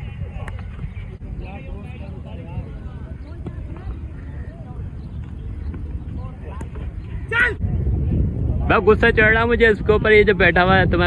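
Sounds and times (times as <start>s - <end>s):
faint distant voices: 0.0s - 9.1s
wind rumbling on microphone: 0.0s - 11.0s.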